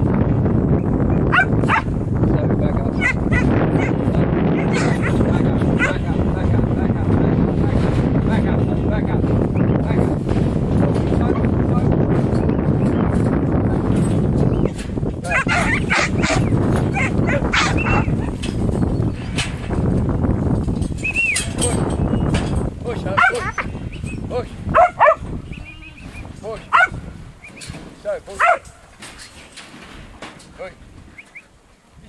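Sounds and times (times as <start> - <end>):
wind buffeting microphone: 0.0 - 32.0
dog barking: 1.3 - 1.9, 3.0 - 4.0, 4.6 - 5.2, 5.8 - 6.0, 15.3 - 18.2, 23.2 - 23.7, 24.7 - 25.3, 26.7 - 27.0, 28.4 - 28.7.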